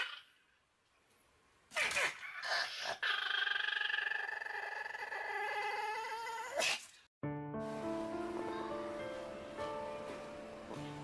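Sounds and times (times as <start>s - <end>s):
dog whining: 1.8s - 6.7s.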